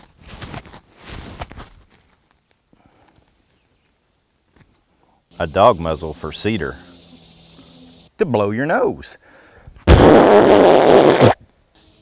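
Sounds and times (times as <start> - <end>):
man blowing his nose: 9.9 - 11.4.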